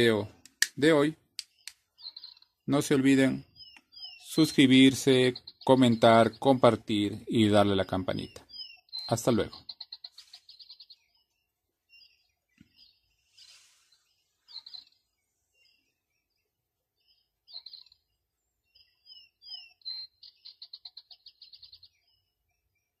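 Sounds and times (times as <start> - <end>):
bird trill: 0.0 - 23.0
birds chirping: 0.0 - 23.0.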